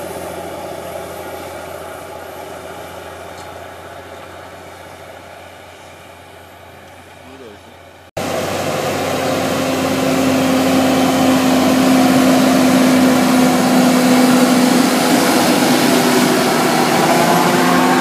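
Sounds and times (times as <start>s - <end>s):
tractor engine drone: 0.0s - 18.0s.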